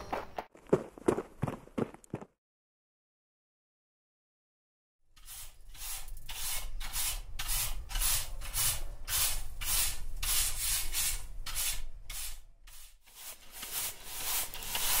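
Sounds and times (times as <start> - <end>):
bristle brush scrubbing chimney flue: 5.2 - 15.0.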